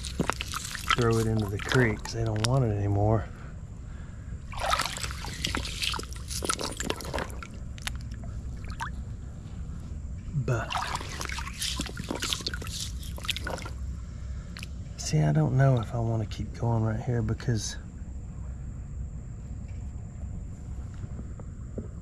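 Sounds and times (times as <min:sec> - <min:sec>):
hand splashing in shallow water: 0:00.0 - 0:02.6, 0:04.5 - 0:09.0, 0:10.4 - 0:13.8
steady low rumble: 0:00.0 - 0:22.0.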